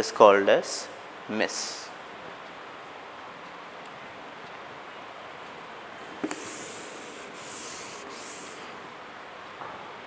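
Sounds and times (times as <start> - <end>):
duster knocking on whiteboard: 6.2 - 6.6
duster wiping whiteboard: 6.2 - 8.7.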